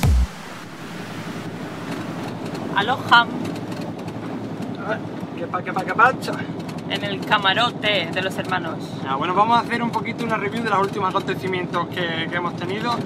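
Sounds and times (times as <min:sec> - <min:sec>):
electronic music: 0:00.0 - 0:01.5.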